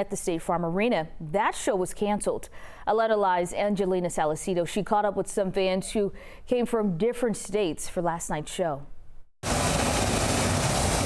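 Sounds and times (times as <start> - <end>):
water gushing from broken main: 9.4 - 11.0.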